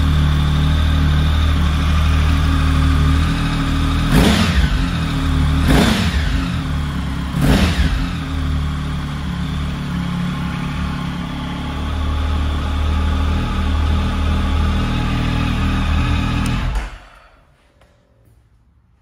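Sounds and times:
motorcycle engine idling: 0:00.0 - 0:17.2.

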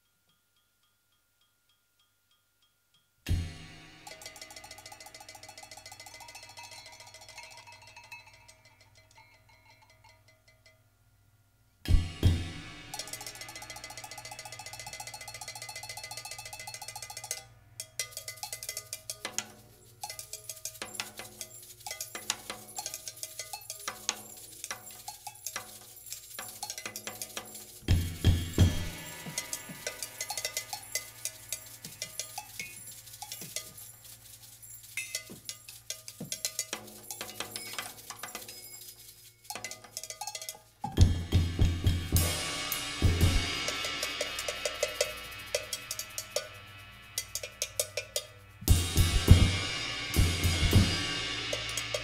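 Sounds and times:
ringing metal percussion strikes: 0:03.3 - 0:10.8, 0:11.9 - 0:52.0
drum kit playing free jazz: 0:11.9 - 0:14.4, 0:20.8 - 0:33.7, 0:40.9 - 0:46.6, 0:47.2 - 0:52.0
cymbal crash: 0:28.0 - 0:31.9.

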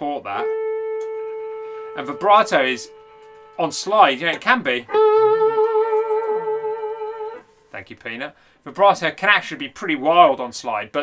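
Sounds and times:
slide electric guitar note: 0:00.0 - 0:07.5.

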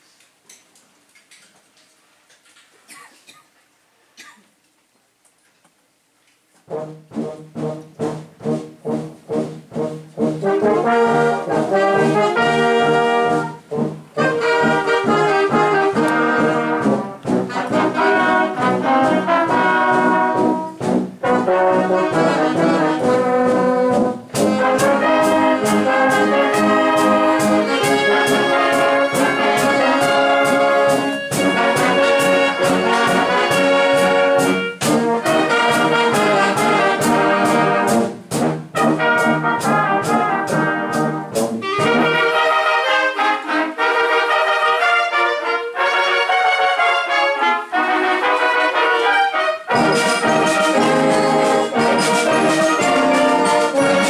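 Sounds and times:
brass band playing: 0:06.6 - 0:54.0
steady drum beat: 0:07.2 - 0:42.2, 0:49.8 - 0:54.0.

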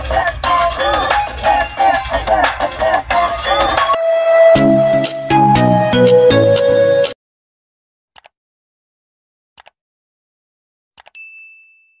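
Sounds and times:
high bell ding: 0:11.2 - 0:12.0.

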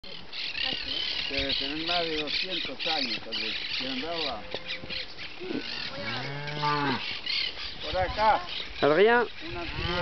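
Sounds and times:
cow mooing: 0:05.4 - 0:07.1.

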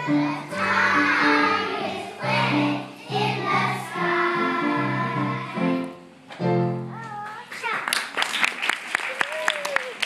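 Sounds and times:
children singing: 0:00.0 - 0:05.9
instrumental accompaniment: 0:00.0 - 0:07.1.

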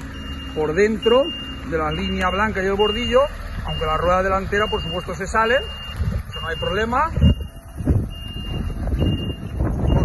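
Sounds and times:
truck engine low rumble: 0:00.0 - 0:10.0
truck reversing alarm beeping: 0:00.0 - 0:10.0.

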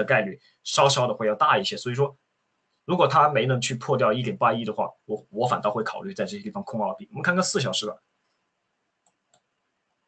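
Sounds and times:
computer mouse clicks: 0:09.0 - 0:09.6.

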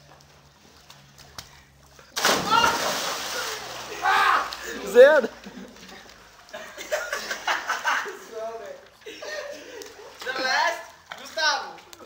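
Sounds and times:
water sloshing: 0:00.0 - 0:06.8
loud splash into pool: 0:02.2 - 0:04.6
people shouting: 0:02.3 - 0:02.9, 0:03.9 - 0:04.6.

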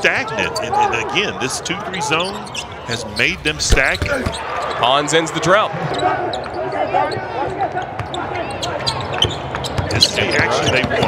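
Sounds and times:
sneakers squeaking on floor: 0:02.0 - 0:04.9, 0:05.8 - 0:11.0.

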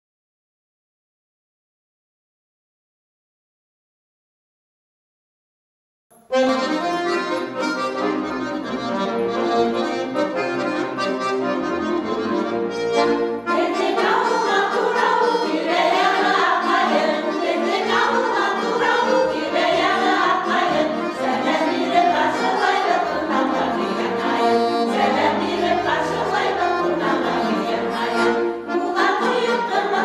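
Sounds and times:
button accordion playing folk tune: 0:06.3 - 0:30.0
women singing: 0:13.5 - 0:30.0.

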